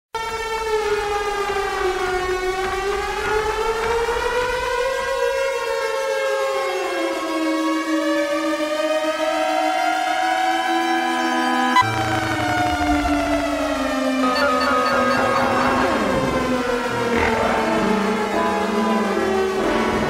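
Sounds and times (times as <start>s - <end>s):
siren-like electronic tone: 10.6s - 20.0s
held electronic tones: 11.8s - 17.6s.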